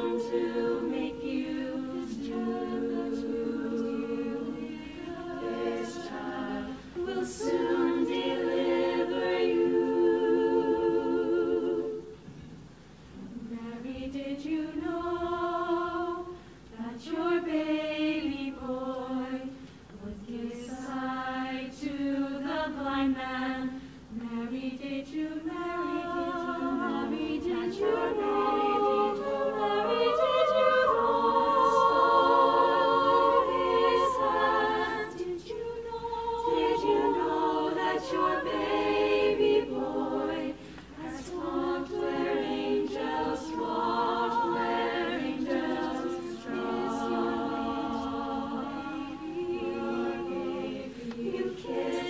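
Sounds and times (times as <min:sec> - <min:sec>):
women's choir singing a cappella: 0:00.0 - 0:52.0.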